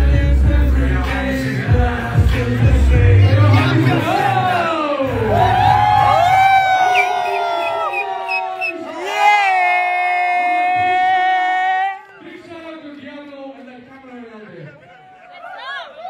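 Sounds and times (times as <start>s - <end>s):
man singing into a microphone: 0.0s - 5.0s
crowd cheering and whooping: 3.3s - 12.3s, 14.7s - 16.0s.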